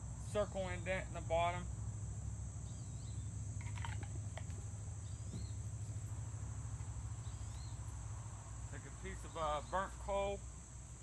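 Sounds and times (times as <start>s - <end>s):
low steady rumble: 0.0s - 9.1s
crickets chirping: 0.0s - 11.0s.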